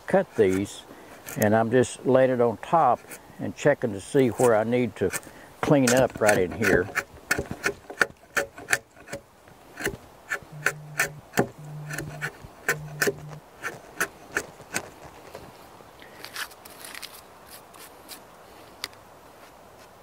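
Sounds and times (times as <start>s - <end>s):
chisel scraping wood: 0.2s - 1.6s, 2.9s - 3.2s, 4.3s - 15.2s.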